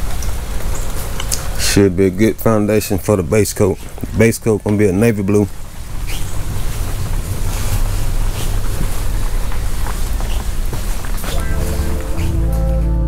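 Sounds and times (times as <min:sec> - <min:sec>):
rushing air noise: 0:05.5 - 0:12.8
music: 0:11.3 - 0:13.0.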